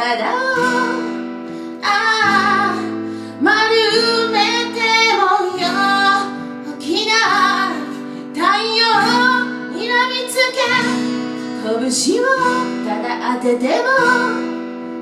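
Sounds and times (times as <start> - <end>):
acoustic guitar: 0.0 - 15.0
woman singing: 0.0 - 15.0.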